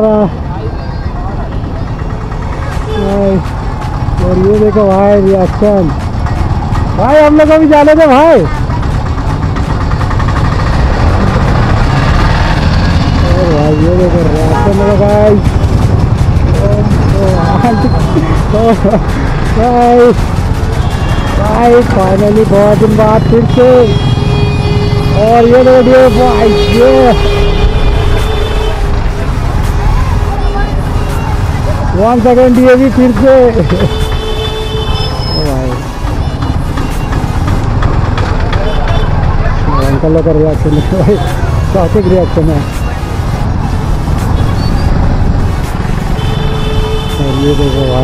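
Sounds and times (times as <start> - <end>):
motorcycle rumbling at low speed: 0.0 - 48.0
voices: 0.0 - 48.0.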